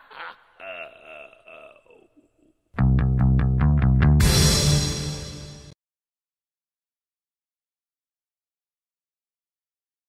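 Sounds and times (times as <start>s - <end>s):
cartoon ghost cackling laugh: 0.0s - 2.7s.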